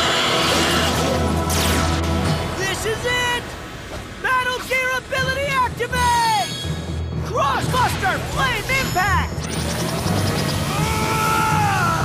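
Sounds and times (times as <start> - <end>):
dramatic background music: 0.0 - 12.0.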